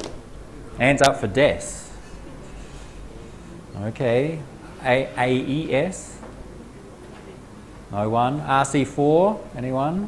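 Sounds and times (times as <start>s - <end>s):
low room hum: 0.0s - 10.0s
man speaking: 0.6s - 2.0s, 3.2s - 6.2s.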